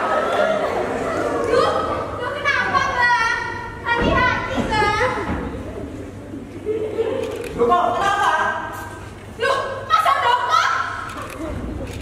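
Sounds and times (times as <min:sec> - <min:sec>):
high-pitched voices shouting: 0:09.4 - 0:11.1.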